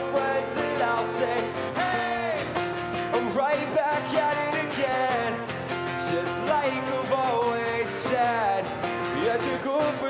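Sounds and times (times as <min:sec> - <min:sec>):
acoustic guitars strummed: 0:00.0 - 0:10.0
person singing: 0:00.0 - 0:10.0.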